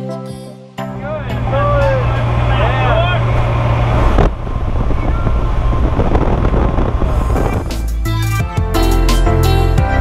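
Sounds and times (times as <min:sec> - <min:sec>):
plane engine drone: 0:01.1 - 0:08.1.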